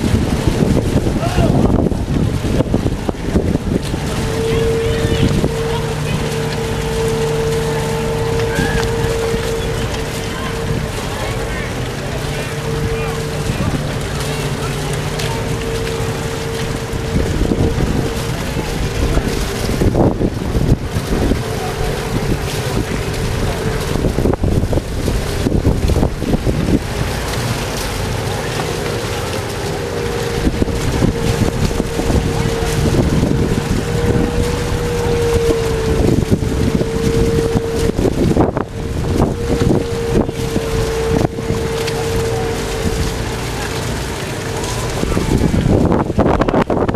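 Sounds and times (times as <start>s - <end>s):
outboard motor running: 0.0s - 46.9s
wind buffeting microphone: 0.0s - 46.9s.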